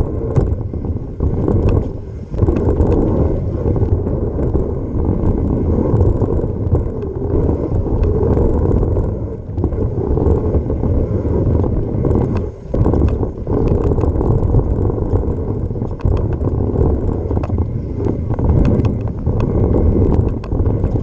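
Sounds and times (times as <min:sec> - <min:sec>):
bike rattles and clicks: 0:00.0 - 0:21.0
wind on the microphone: 0:00.0 - 0:21.0.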